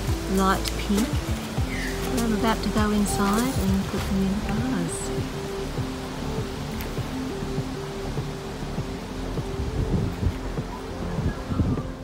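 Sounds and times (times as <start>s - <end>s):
low rumbling bumps: 0.0s - 12.0s
steady rushing noise: 0.0s - 12.0s.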